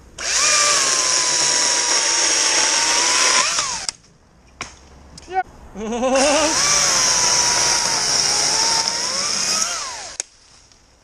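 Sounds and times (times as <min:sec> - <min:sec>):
chainsaw motor whine: 0:00.2 - 0:03.9, 0:06.4 - 0:10.2.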